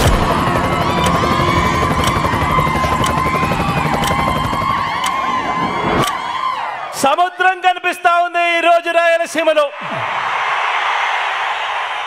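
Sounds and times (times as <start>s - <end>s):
helicopter rotor beating: 0.0s - 6.1s
crowd whistling: 0.2s - 7.1s.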